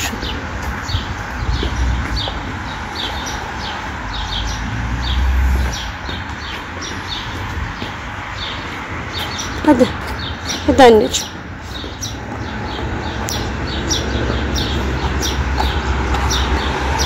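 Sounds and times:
city traffic rumble: 0:00.0 - 0:17.0
small birds chirping: 0:00.0 - 0:17.0.

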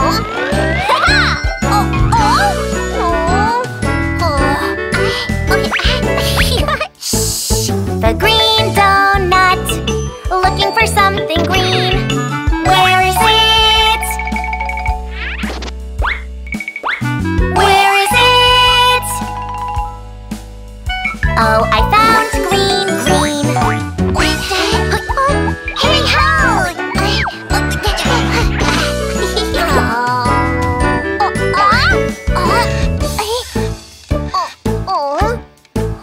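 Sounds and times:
squeaky rising and falling glides: 0:00.0 - 0:02.8
light children's music: 0:00.0 - 0:36.0.

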